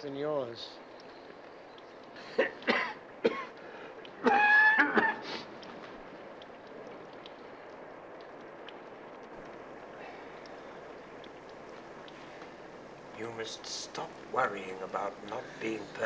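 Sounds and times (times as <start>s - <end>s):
old man coughing: 2.3s - 3.6s, 4.2s - 5.4s.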